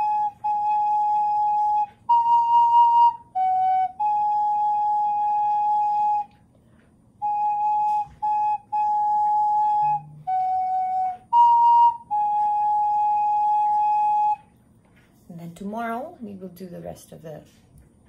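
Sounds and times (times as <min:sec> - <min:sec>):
recorder playing slow notes: 0:00.0 - 0:06.4, 0:07.2 - 0:14.5.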